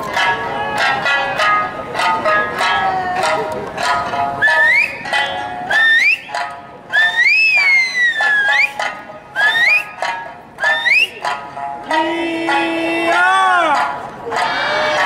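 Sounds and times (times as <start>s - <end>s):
folk tune on plucked lute: 0.0s - 15.0s
sharp finger whistles: 4.4s - 5.0s, 5.7s - 6.3s, 6.9s - 8.8s, 9.4s - 10.0s, 10.6s - 11.2s.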